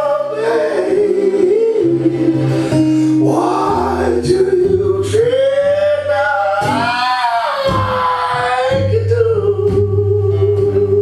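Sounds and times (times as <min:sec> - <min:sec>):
man singing long high note: 0:00.0 - 0:11.0
acoustic guitar strumming: 0:01.8 - 0:11.0.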